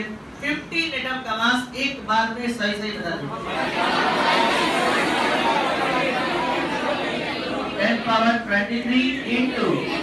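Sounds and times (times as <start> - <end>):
students calling out together: 3.5 - 7.8.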